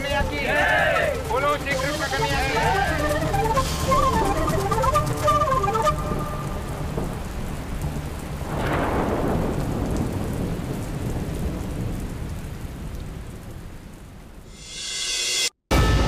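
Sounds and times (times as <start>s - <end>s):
heavy rain: 0.0s - 14.8s
thunderclap: 1.1s - 14.6s.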